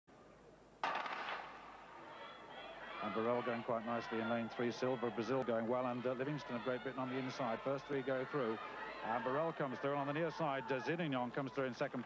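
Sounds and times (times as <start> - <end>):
starter's pistol crack: 0.8 - 1.6.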